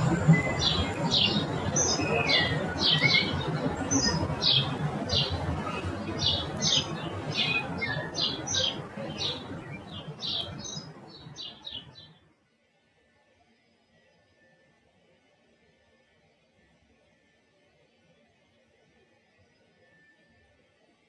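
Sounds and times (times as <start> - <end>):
low rushing background: 0.0 - 11.4
birds chirping and squawking: 0.0 - 12.1.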